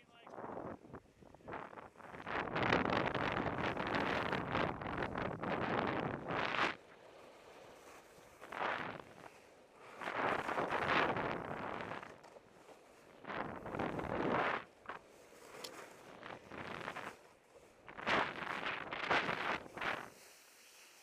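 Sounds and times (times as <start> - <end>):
wind noise on microphone: 0.0 - 6.8, 7.8 - 12.2, 13.1 - 15.0, 16.0 - 17.2, 17.8 - 20.2
skis scraping over snow: 0.4 - 21.0.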